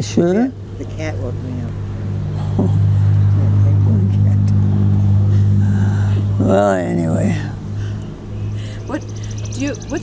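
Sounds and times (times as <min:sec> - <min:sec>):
loud steady low hum: 0:00.0 - 0:10.0.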